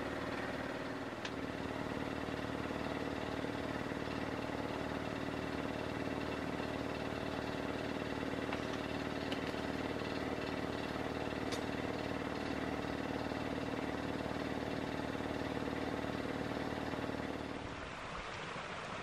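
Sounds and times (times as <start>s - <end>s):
motor humming: 0.0s - 17.7s.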